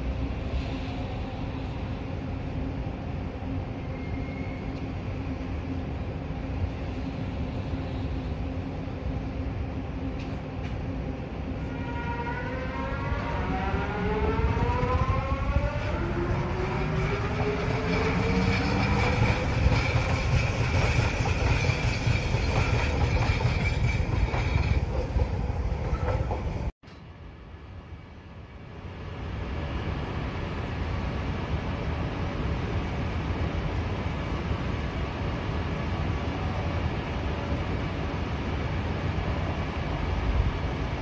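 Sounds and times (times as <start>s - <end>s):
train passing with motor whine: 0.0s - 41.0s.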